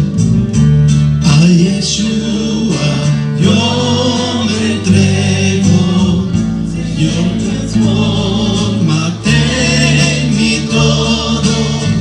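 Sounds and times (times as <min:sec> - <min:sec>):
sustained instrumental accompaniment: 0:00.0 - 0:12.0
voices singing praise song: 0:01.3 - 0:12.0.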